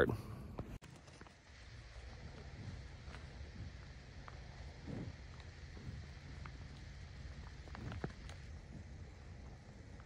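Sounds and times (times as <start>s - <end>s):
wind rumble on microphone: 1.6s - 10.0s.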